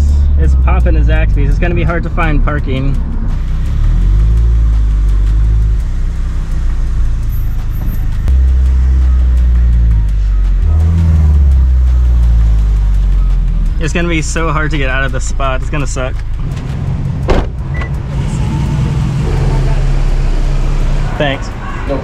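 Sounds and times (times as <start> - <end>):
car engine droning at low speed: 0.0 - 22.0.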